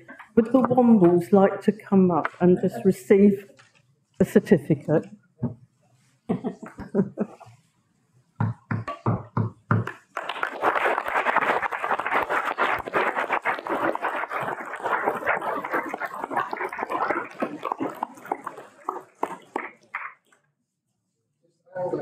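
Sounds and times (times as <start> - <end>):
crowd applauding: 10.1 - 15.8.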